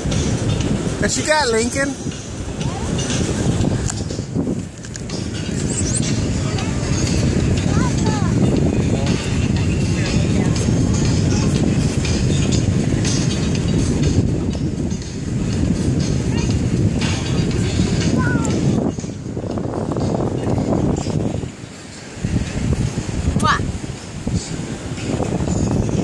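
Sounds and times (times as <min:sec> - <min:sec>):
wind buffeting microphone: 0:00.0 - 0:26.0
faint voices: 0:06.0 - 0:13.4.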